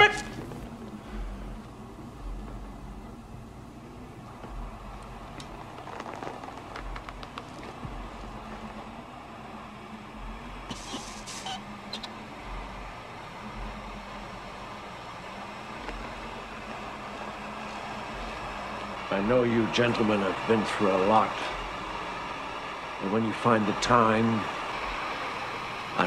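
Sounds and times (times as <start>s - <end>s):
low rumbling drone: 0.0s - 26.0s
short hiss: 10.7s - 11.6s.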